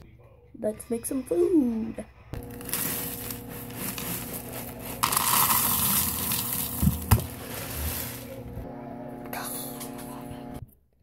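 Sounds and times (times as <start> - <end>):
steady low hum: 1.8 - 10.7
cereal pouring into plastic bowl: 2.4 - 8.4.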